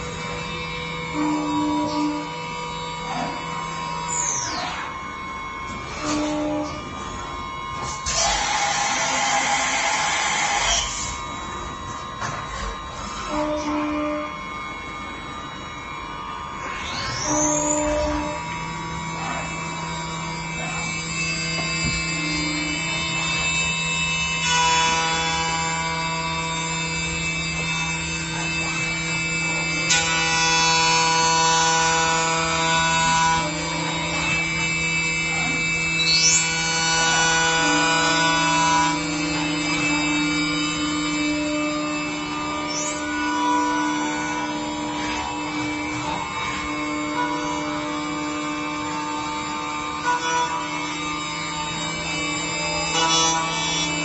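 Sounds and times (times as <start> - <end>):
milling machine whining: 0.0 - 54.0.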